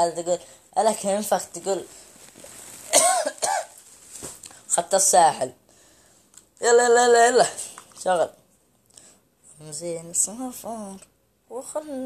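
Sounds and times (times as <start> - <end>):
man coughing: 2.9 - 3.8.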